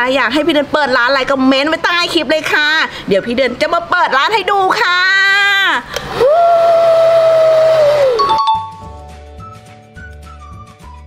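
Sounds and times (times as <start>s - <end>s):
jingle music: 8.2s - 10.0s.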